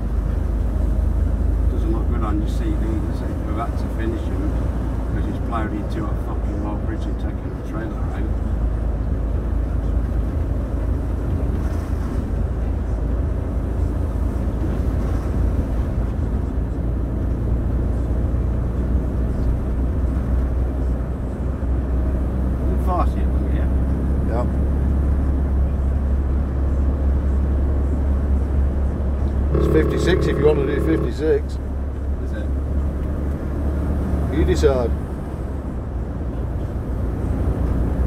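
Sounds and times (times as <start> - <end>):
lorry engine rumble: 0.0 - 38.0
road noise: 0.0 - 38.0.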